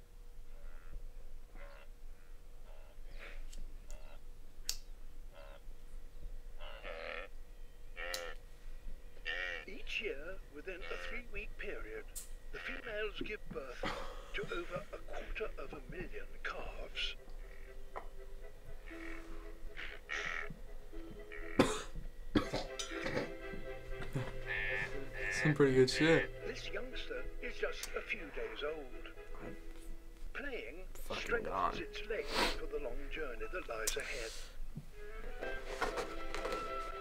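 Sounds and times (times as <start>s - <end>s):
quiet background music: 0.0s - 37.0s
wildebeest bleating and grunting: 0.5s - 4.2s, 5.3s - 5.7s, 6.6s - 8.4s, 9.2s - 23.4s, 24.0s - 29.7s
man coughing: 13.8s - 15.5s, 21.6s - 23.3s.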